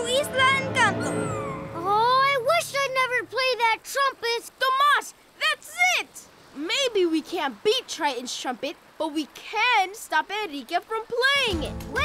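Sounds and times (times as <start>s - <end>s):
high-pitched cartoon voice: 0.0s - 6.1s.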